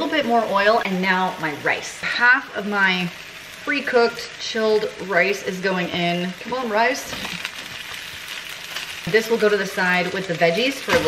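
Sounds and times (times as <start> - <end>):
vegetables sizzling in skillet: 0.0 - 11.0.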